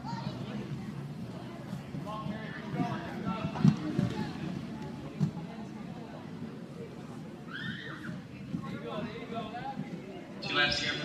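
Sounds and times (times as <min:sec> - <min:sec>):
people talking in echoing hall: 0:00.0 - 0:11.0.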